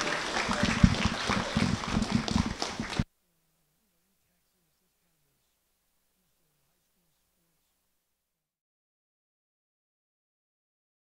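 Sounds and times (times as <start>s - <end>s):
audience applauding: 0.0s - 3.0s.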